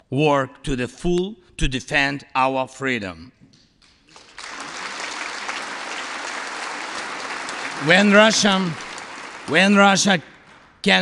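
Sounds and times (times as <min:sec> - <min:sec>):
audience applauding: 0:03.8 - 0:10.8.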